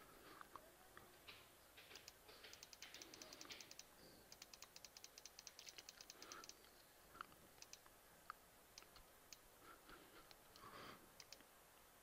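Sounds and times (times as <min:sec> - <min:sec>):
rapid computer clicking: 0:01.3 - 0:06.7, 0:07.5 - 0:07.9, 0:08.7 - 0:09.5, 0:10.2 - 0:11.5.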